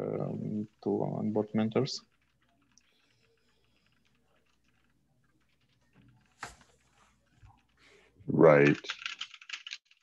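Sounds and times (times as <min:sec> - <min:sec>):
faint keyboard typing: 0:00.0 - 0:10.0.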